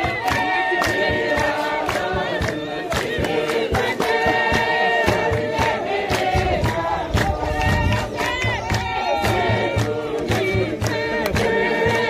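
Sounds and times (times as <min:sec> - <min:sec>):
crowd singing along: 0:00.0 - 0:12.0
group singing in chorus: 0:00.0 - 0:12.0
steady percussive beat: 0:00.0 - 0:12.0.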